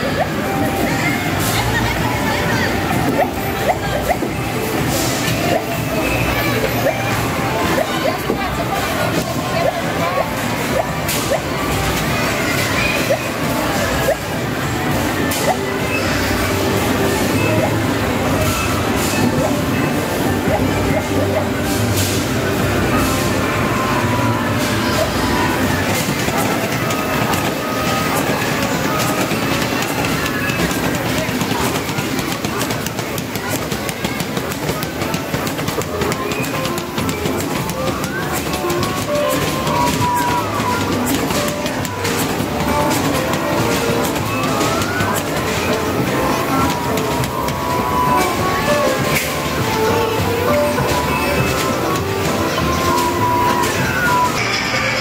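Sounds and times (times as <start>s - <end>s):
arcade machine music and jingles: 0.0s - 55.0s
chatter of voices: 0.0s - 55.0s.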